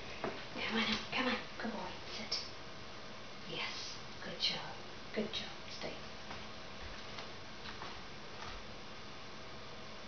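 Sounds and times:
low room hiss: 0.0 - 10.0.

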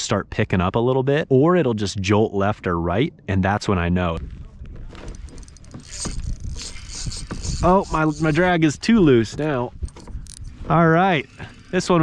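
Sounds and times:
fishing reel drag clicking: 5.3 - 8.8.

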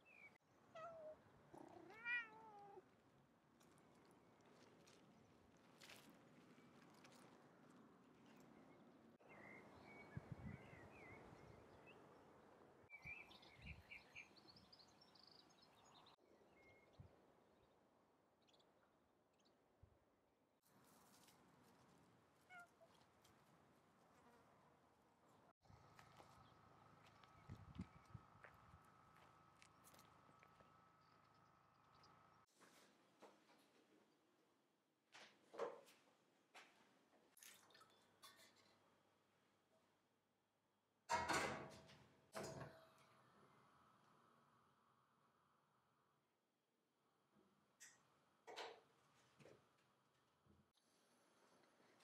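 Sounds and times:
cat meowing: 0.8 - 2.8, 22.5 - 22.8.

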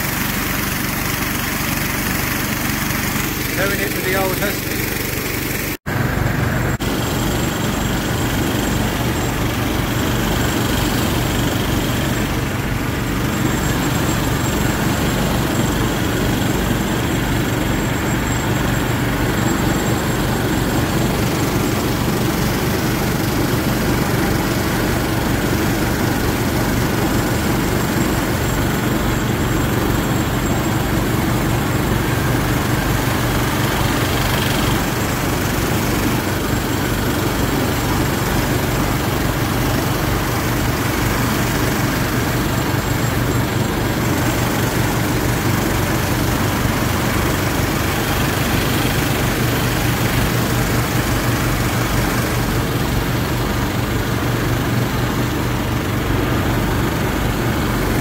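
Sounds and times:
leaf blower engine running: 0.0 - 58.0.

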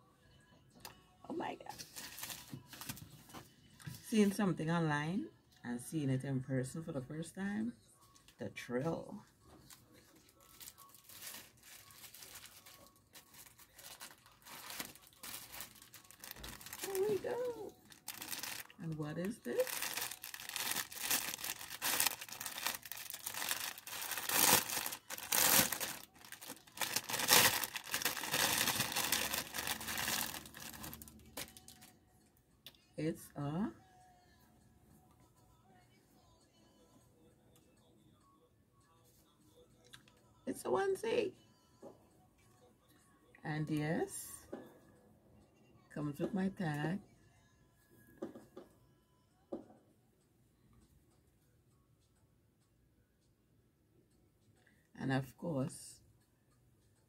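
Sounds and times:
plastic bag crinkling: 1.8 - 3.0, 10.2 - 31.9.

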